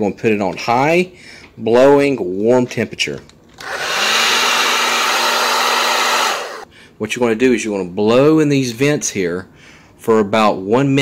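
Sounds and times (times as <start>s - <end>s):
hair dryer running: 3.6s - 6.6s.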